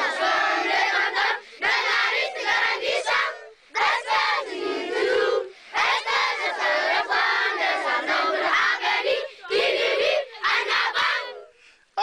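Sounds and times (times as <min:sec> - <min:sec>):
children singing together: 0:00.0 - 0:11.5.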